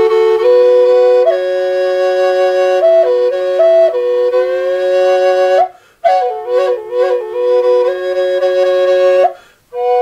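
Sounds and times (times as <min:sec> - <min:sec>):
flute drone: 0:00.0 - 0:10.0
flute melody sliding upward: 0:00.0 - 0:10.0.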